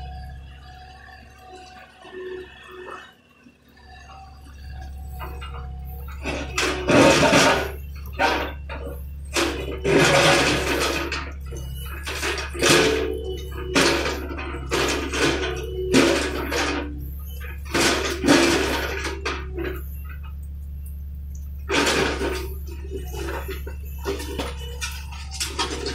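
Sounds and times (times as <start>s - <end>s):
excavator engine running: 0.0s - 25.9s
scraping and clattering rubble: 3.9s - 25.9s.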